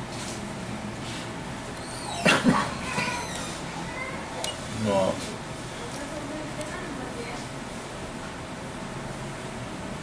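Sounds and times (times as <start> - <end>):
low room hum: 0.0 - 10.0
man coughing: 2.2 - 2.8.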